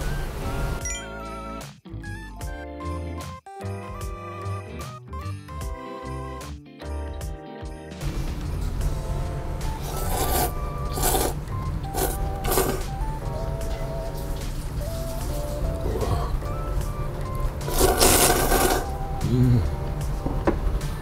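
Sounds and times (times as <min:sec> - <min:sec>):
background music with low beat: 0:00.0 - 0:21.0
loud noodle slurps: 0:09.8 - 0:12.9, 0:17.6 - 0:19.0.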